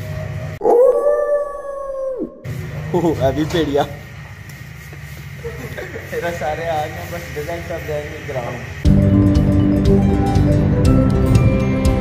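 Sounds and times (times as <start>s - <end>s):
long howl: 0.6s - 2.5s.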